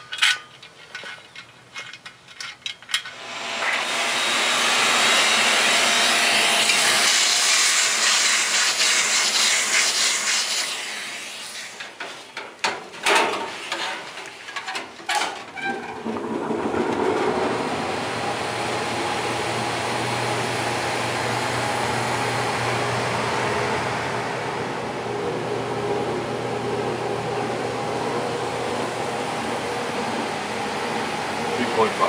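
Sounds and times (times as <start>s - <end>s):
gas furnace roaring: 0.0s - 32.0s.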